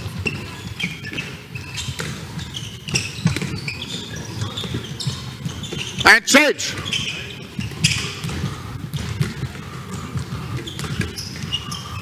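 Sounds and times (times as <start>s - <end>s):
handball bouncing: 0.0s - 6.0s, 6.8s - 12.0s
shoes squeaking on sports floor: 0.0s - 12.0s.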